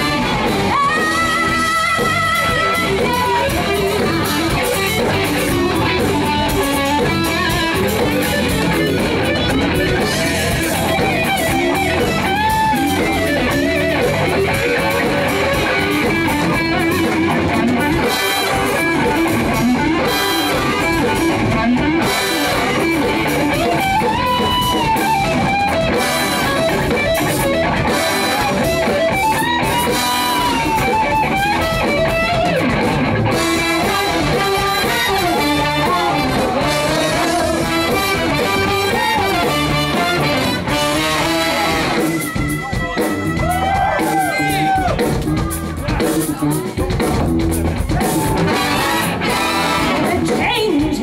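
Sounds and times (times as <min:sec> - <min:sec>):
bass guitar: 0:00.0 - 0:51.0
drums: 0:00.0 - 0:51.0
electric guitars: 0:00.0 - 0:51.0
trumpet: 0:33.3 - 0:44.8, 0:48.4 - 0:50.3
saxophone: 0:33.3 - 0:45.0, 0:48.1 - 0:51.0
trombone: 0:33.6 - 0:42.1, 0:48.4 - 0:50.1.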